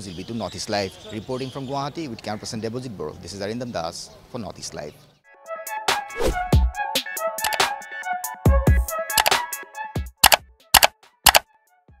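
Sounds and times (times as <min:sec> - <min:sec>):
double-click sound effects: 0:07.4 - 0:07.6, 0:09.2 - 0:09.4, 0:10.2 - 0:11.4.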